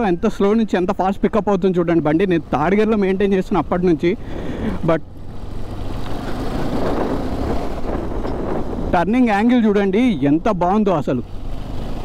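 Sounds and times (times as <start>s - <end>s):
wind and road rush: 0.0s - 12.0s.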